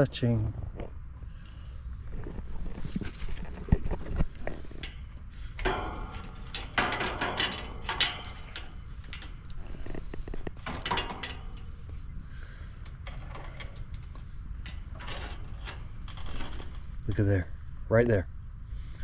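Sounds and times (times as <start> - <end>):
wires scraping metal casing: 2.0 - 18.2.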